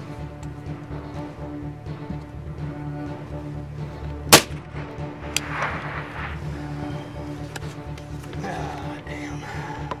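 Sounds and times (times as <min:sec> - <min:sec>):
background music: 0:00.0 - 0:10.0
suppressed rifle shot: 0:04.3 - 0:06.5.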